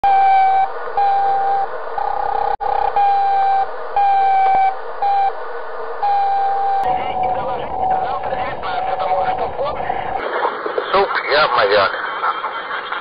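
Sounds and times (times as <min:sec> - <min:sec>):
electronic beeps: 0:00.0 - 0:05.3, 0:06.0 - 0:10.2.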